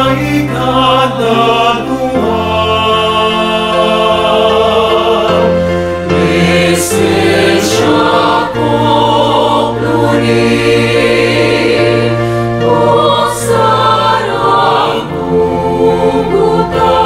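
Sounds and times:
mixed choir singing in harmony: 0.0s - 17.0s.

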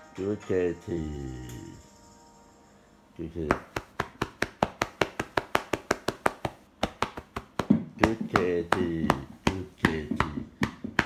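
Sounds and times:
microphone tapped by hand: 3.5s - 11.0s.

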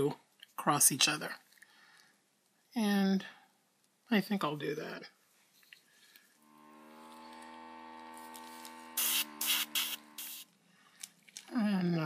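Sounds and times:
airbrush compressor humming: 6.4s - 10.6s
airbrush air blasts hissing: 8.6s - 10.5s.

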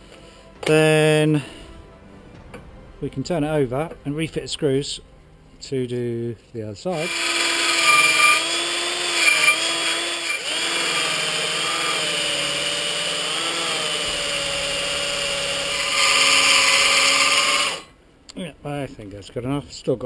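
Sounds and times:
electric drill sanding metal: 7.0s - 17.9s.

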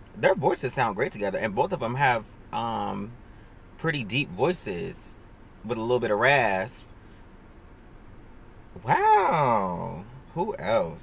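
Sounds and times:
faint car cabin noise: 0.0s - 11.0s
man saying wow: 8.8s - 11.0s.

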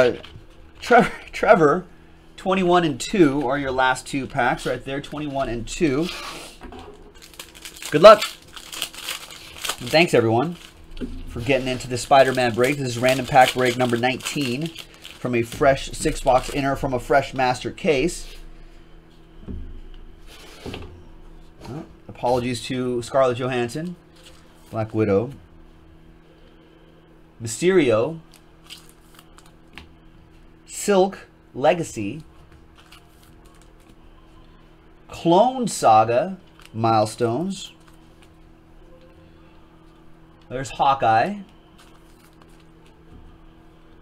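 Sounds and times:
foil pack rustling: 7.0s - 18.6s, 28.3s - 29.6s, 41.7s - 43.0s
light clicks of foil pack: 7.2s - 10.8s, 12.2s - 15.3s.

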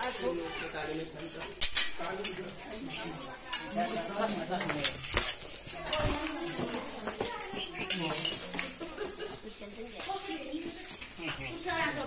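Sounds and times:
metal clinking against glass: 7.8s - 8.6s.

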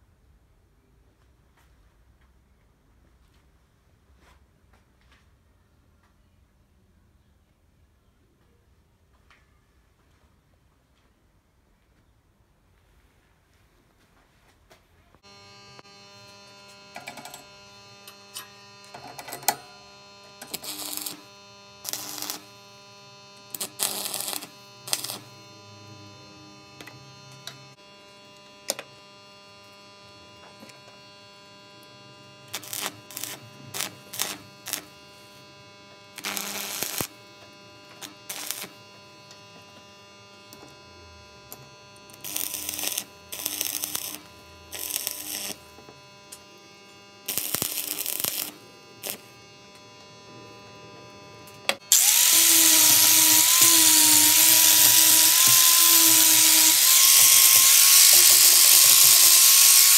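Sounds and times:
arc welder crackling: 15.2s - 59.9s.

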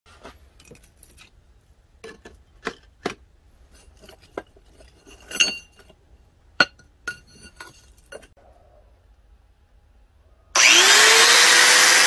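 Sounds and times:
steel and charcoal clinking: 2.0s - 8.4s.

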